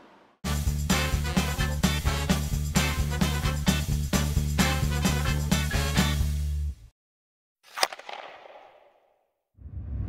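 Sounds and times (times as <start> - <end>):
music: 0.4 - 6.9.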